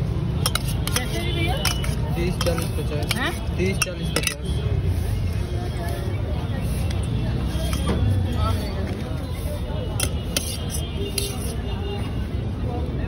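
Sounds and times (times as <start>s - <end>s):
low traffic rumble: 0.0s - 13.0s
steel spoon clinking steel bowl: 0.4s - 4.6s, 10.0s - 11.6s.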